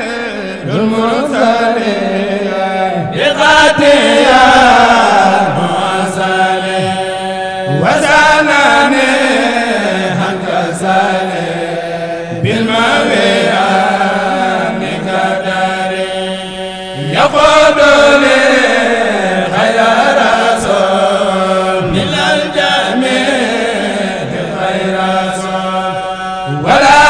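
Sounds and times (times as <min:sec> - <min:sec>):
men chanting devotional poem: 0:00.0 - 0:27.0.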